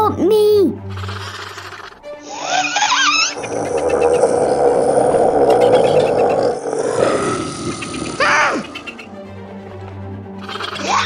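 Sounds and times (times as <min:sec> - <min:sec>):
dinosaur growling roar: 0:02.4 - 0:08.9.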